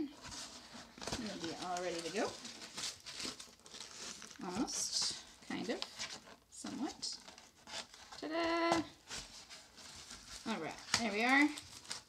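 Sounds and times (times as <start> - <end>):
foil tube crinkling and scraping: 0.0 - 12.0.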